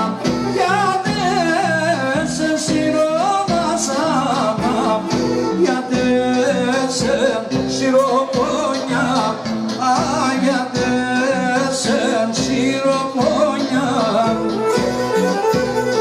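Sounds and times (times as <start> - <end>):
amplified keyboard: 0.0 - 16.0
man singing into a microphone: 0.0 - 16.0
pulsing bass line: 0.0 - 16.0.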